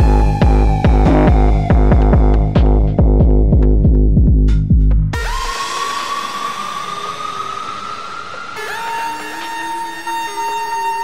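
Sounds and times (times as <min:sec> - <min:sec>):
high rising synth tone: 0:05.2 - 0:11.0
hissing synth wash: 0:05.2 - 0:11.0.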